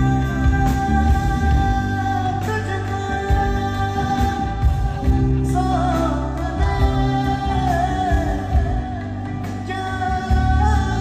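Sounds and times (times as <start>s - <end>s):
live band playing a song: 0.0s - 11.0s.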